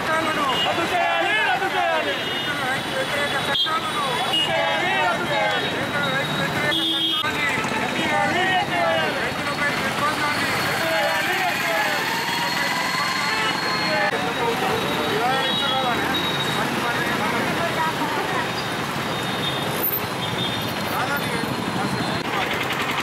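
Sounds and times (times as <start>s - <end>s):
indistinct voices: 0.0s - 18.8s
street traffic hum: 0.0s - 23.0s.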